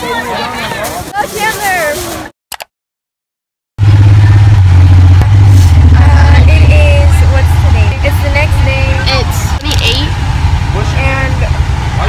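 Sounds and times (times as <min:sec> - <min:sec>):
bus rumble: 0:00.0 - 0:02.3, 0:03.8 - 0:12.0
voices talking: 0:00.0 - 0:02.3, 0:05.5 - 0:12.0.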